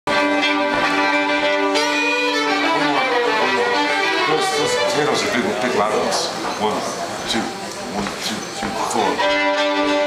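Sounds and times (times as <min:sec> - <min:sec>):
fiddles bowing a tune: 0:00.1 - 0:06.3, 0:08.9 - 0:10.0.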